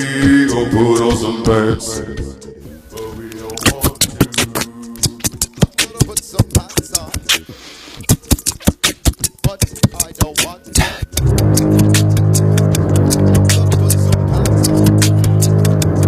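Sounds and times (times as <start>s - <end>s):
sustained bass layer: 0.0s - 7.2s, 11.2s - 16.0s
beatboxing into a microphone: 0.0s - 16.0s.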